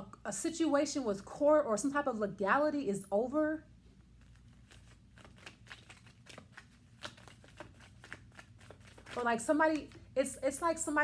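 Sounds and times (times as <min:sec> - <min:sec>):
cards being shuffled: 0:04.0 - 0:10.1.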